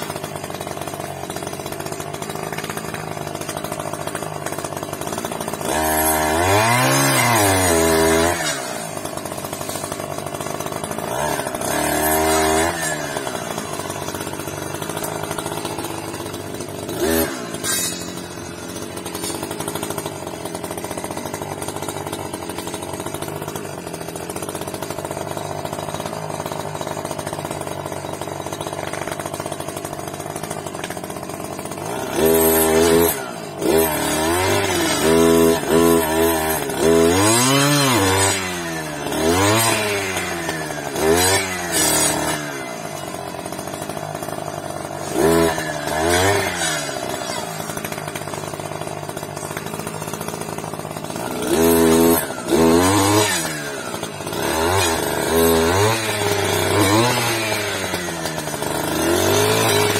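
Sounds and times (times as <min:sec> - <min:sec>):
clearing saw engine running and revving: 0:00.0 - 0:59.9.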